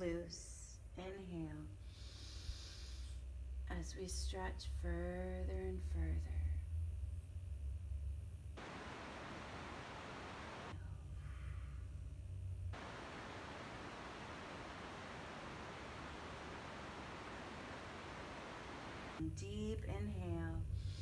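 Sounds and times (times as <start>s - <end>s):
steady static hiss: 6.7s - 21.0s.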